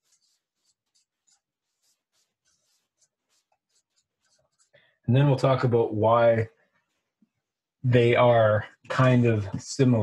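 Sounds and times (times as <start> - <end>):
marker scratching on paper: 0.0 - 4.8.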